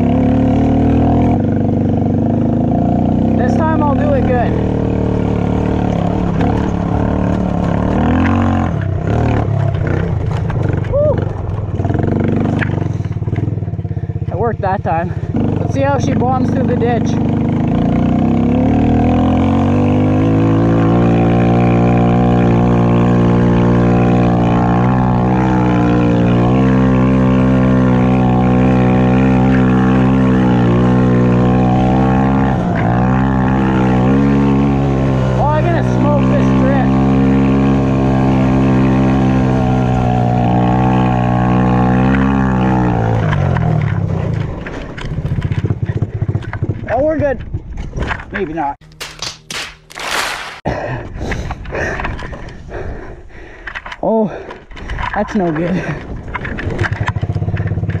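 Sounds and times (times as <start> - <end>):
quad engine revving: 0.0 - 47.2, 55.1 - 58.0.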